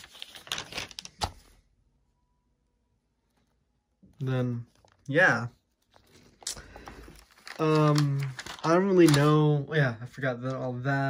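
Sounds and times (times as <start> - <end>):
notebook pages rustling: 0.0 - 1.6, 4.6 - 9.5.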